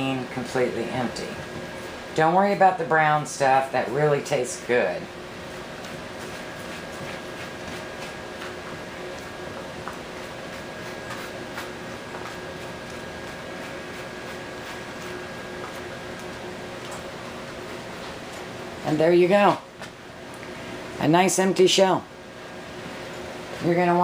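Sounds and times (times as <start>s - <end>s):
steady background hum: 0.0s - 24.0s.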